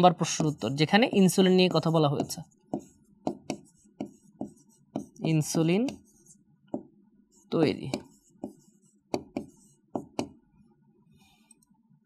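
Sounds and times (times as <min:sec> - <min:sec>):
stylus tapping on screen: 0:00.2 - 0:07.0, 0:07.8 - 0:10.4.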